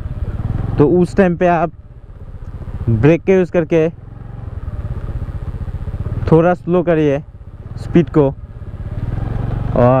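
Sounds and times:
scooter engine chugging: 0.0 - 10.0.

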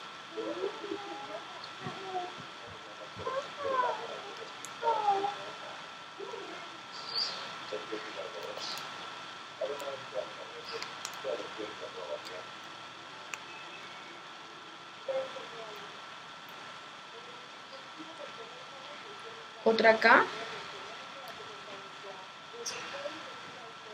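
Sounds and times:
young child murmuring: 0.3 - 7.6
faint high-pitched tone: 13.3 - 15.8.

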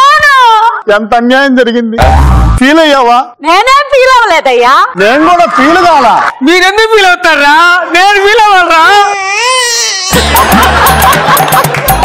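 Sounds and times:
loud music with heavy bass beat: 2.0 - 2.6.

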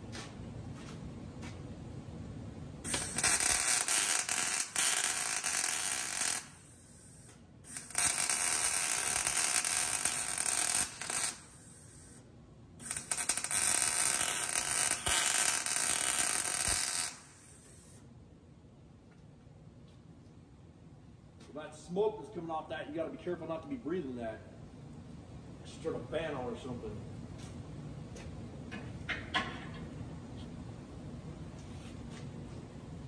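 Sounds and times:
welding arc crackling: 2.8 - 12.2, 12.8 - 18.0.

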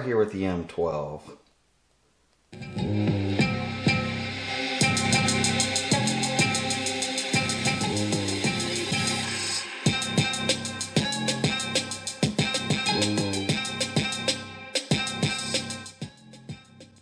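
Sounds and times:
music with drum-kit beat: 2.6 - 17.0.

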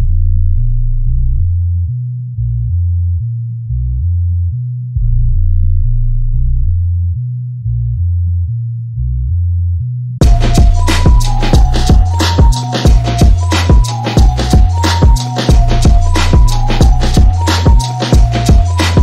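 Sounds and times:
deep synth bass line: 0.0 - 19.0.

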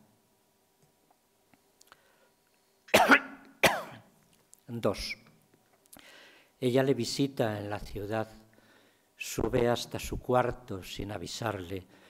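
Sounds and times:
man coughing: 2.9 - 4.1.

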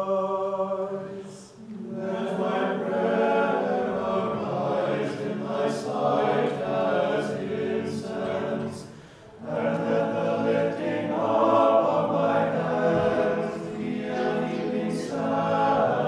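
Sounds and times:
small choir chanting unaccompanied: 0.0 - 16.0.

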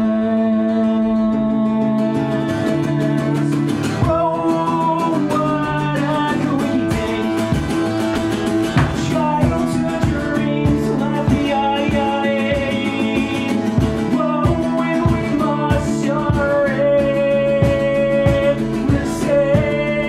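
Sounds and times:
acoustic guitar strumming: 0.0 - 20.0
person singing long notes: 0.0 - 20.0.

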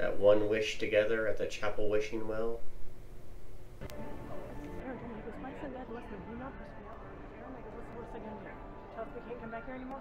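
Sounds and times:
music: 3.8 - 10.0.

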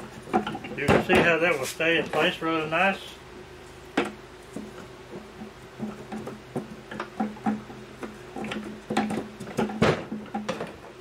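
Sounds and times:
steady low hum: 0.0 - 11.0
wooden frames clicking and clattering: 5.8 - 10.9.

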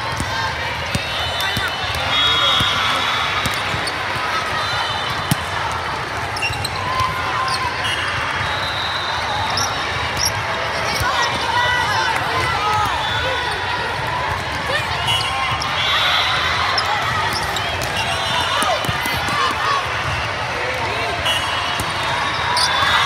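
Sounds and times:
volleyballs hit and bouncing: 0.0 - 8.6, 9.2 - 15.8, 16.4 - 23.0
many overlapping voices: 0.0 - 23.0.

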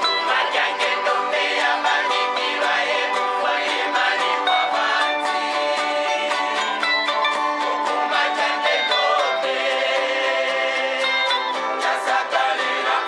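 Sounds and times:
acoustic guitars strumming: 0.0 - 13.0.

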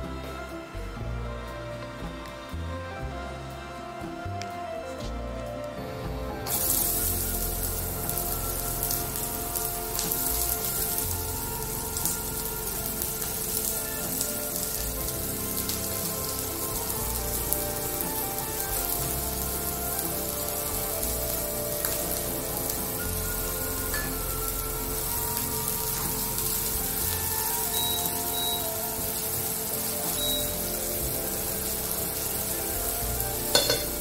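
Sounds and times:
background music: 0.0 - 34.0
onion sizzling in hot oil: 6.5 - 34.0.

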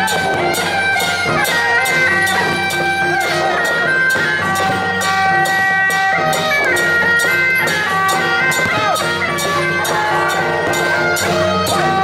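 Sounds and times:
drum strikes: 0.0 - 12.0
hand cymbal strikes: 0.0 - 12.0
wind instrument melody: 0.0 - 12.0.

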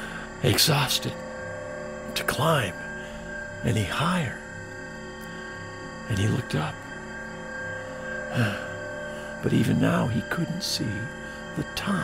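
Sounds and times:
sustained background music tones: 0.0 - 12.0
person sighing: 8.3 - 8.8.

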